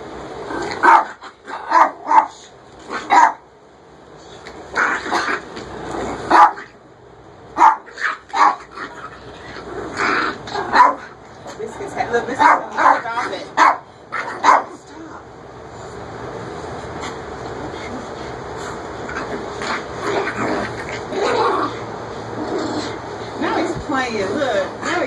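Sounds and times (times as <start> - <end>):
small dog barking: 0.8 - 3.4, 6.3 - 6.8, 7.6 - 9.2, 10.0 - 11.2, 12.4 - 14.8.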